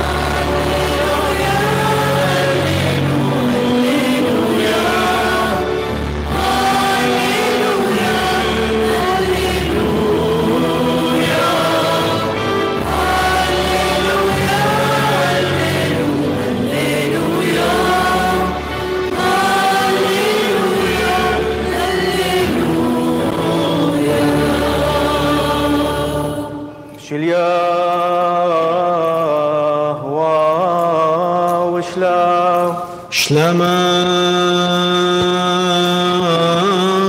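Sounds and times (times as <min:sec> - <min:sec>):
choir singing a chant: 0:00.0 - 0:37.0
low steady accompaniment: 0:00.0 - 0:37.0
man chanting: 0:27.0 - 0:37.0.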